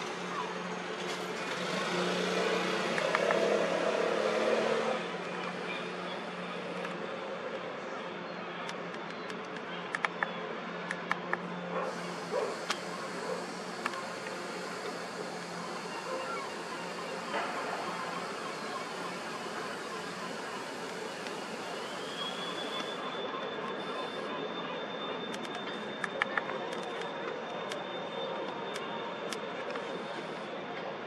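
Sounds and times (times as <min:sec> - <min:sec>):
outdoor background noise: 0:00.0 - 0:31.0
high whine: 0:11.7 - 0:25.9.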